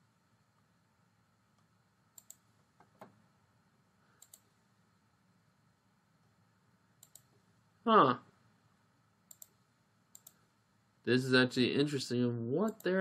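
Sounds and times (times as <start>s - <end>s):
computer mouse clicking: 1.6s - 3.1s, 4.2s - 4.5s, 7.0s - 7.4s, 9.3s - 10.4s, 12.7s - 13.0s.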